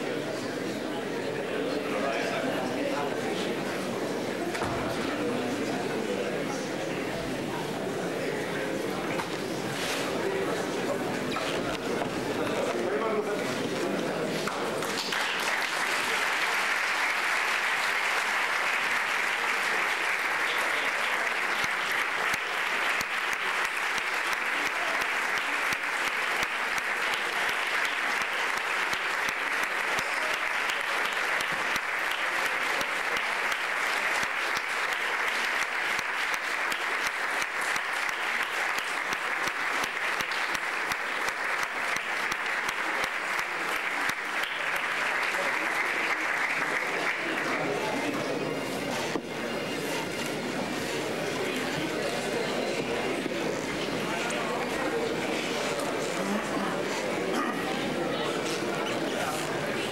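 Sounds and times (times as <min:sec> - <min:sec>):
large audience applauding: 0:10.1 - 0:48.6.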